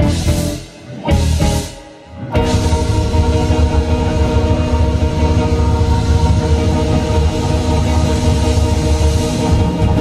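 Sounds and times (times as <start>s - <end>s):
blues band sustained chord: 0.0s - 10.0s
drum rumble: 2.4s - 10.0s.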